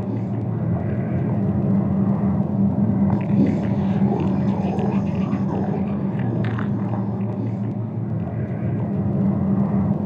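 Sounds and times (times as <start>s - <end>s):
steady low drone: 0.0s - 10.0s.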